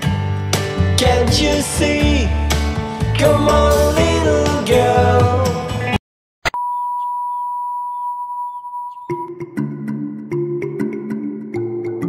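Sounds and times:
electronic sine-wave tone: 0:06.4 - 0:09.5.

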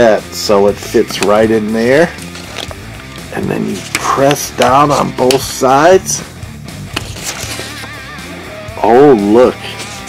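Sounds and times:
quiet guitar music: 0:06.4 - 0:10.0.

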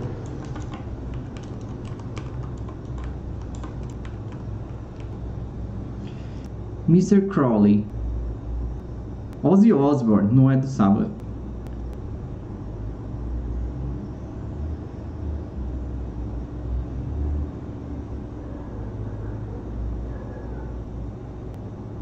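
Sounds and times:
low steady background rumble: 0:00.0 - 0:22.0.

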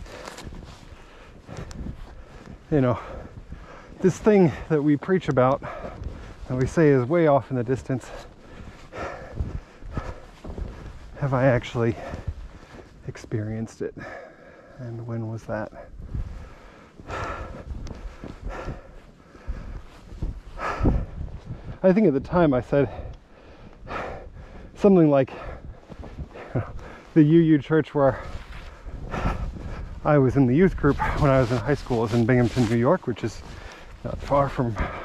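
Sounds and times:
footsteps in deep snow: 0:00.0 - 0:35.0
man speaking: 0:02.7 - 0:03.0, 0:11.2 - 0:12.1, 0:14.8 - 0:15.9, 0:21.8 - 0:23.0, 0:26.6 - 0:28.3, 0:30.0 - 0:33.4, 0:34.0 - 0:35.0.

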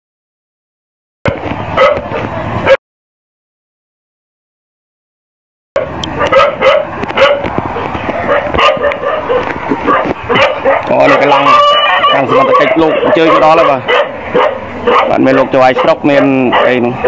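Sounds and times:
dogs barking: 0:01.3 - 0:02.8, 0:05.8 - 0:17.0
people's voices: 0:06.0 - 0:17.0.

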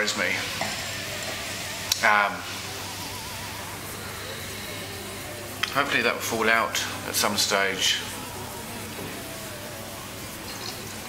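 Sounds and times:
wine pouring into glass: 0:10.1 - 0:11.0.

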